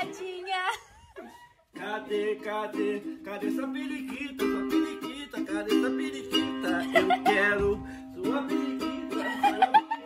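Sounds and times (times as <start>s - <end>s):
ukulele strumming chords: 1.7s - 10.0s.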